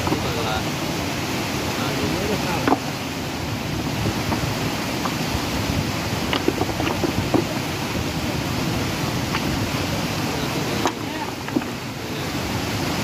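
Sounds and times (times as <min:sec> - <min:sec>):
river water rushing: 0:00.0 - 0:13.0.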